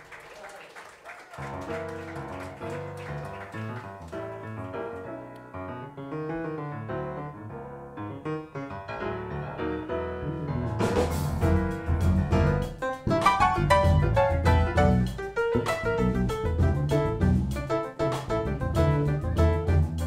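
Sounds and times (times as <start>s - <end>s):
jazz piano playing: 1.4s - 20.0s.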